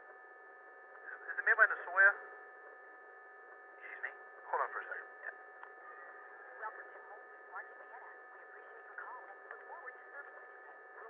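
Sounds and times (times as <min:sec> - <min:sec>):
phone line hum tones: 0:00.0 - 0:11.0
soft indistinct voices: 0:03.8 - 0:11.0.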